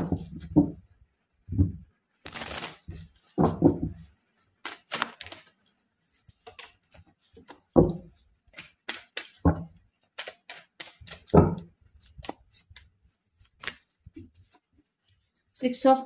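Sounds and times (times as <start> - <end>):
cards clicking and snapping: 4.6 - 5.6, 6.3 - 7.7, 8.5 - 14.0.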